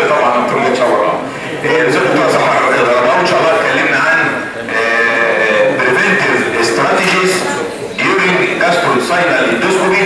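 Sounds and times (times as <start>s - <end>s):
person's voice in a hall: 0.0s - 10.0s.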